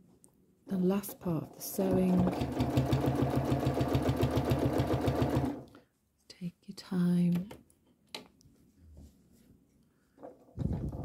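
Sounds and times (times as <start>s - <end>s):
sewing machine stitching: 1.6s - 5.7s.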